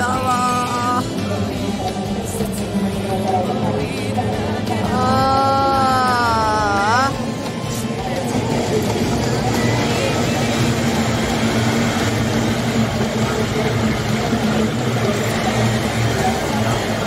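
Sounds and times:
boat outboard engines droning: 0.0 - 17.0.

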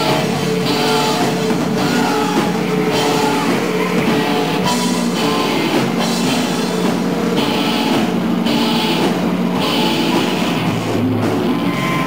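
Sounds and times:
cymbal wash: 0.0 - 12.0
rock band playing: 0.0 - 12.0.

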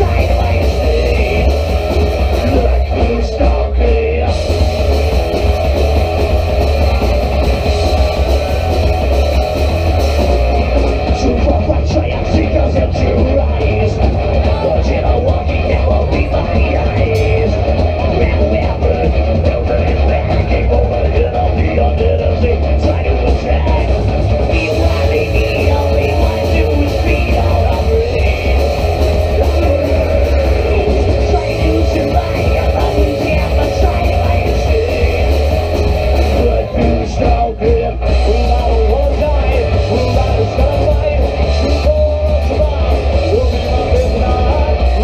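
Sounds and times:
punk band playing live: 0.0 - 45.0.

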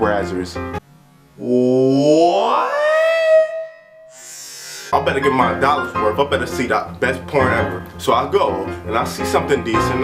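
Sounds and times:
man exclaiming in disbelief: 1.4 - 4.0
man speaking: 4.9 - 10.0.

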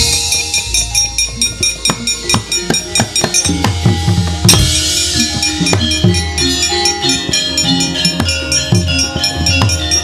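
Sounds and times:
drum strokes: 0.0 - 10.0.

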